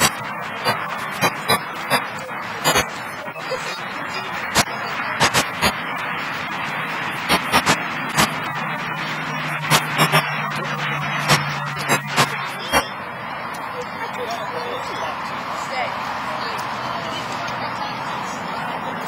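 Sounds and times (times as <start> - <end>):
steady hiss of noise: 0.0 - 19.0.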